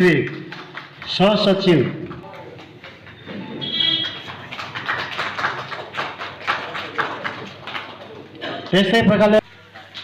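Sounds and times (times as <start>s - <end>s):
audience clapping: 0.0s - 8.9s.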